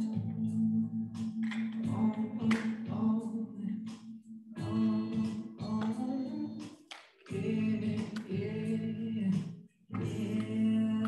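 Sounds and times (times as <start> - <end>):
person singing long notes: 1.8 - 3.9, 4.6 - 6.6.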